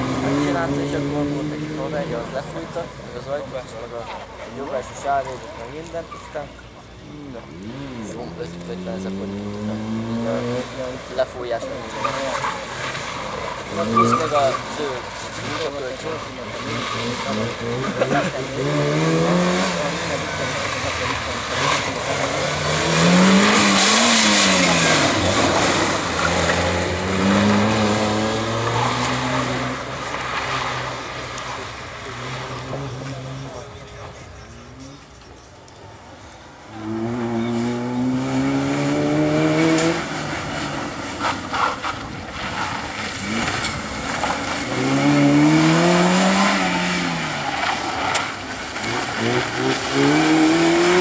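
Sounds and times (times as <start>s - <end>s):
car engine revving: 0.0s - 51.0s.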